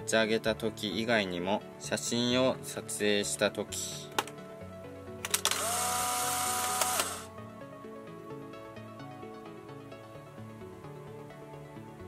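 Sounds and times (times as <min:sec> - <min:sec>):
background music: 0:00.0 - 0:12.0
camera mechanical clicks: 0:05.2 - 0:07.3
camera motor whirring: 0:05.3 - 0:07.3.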